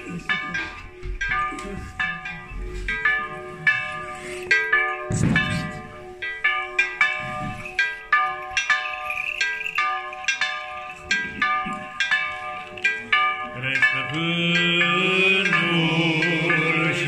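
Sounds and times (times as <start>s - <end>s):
small church bells pealing: 0.0s - 17.0s.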